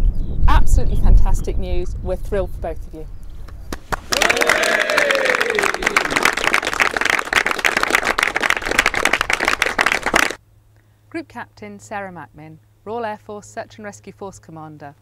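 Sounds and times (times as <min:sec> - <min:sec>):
people clapping and cheering: 0:03.7 - 0:10.4
person calling out a cheer: 0:04.1 - 0:06.3.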